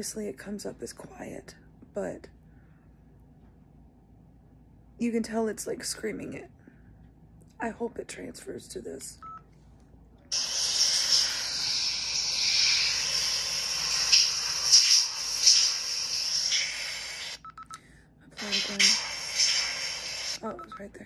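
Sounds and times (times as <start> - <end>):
shower water hiss: 10.3 - 17.4, 18.4 - 20.4
recorder beep: 20.4 - 21.0.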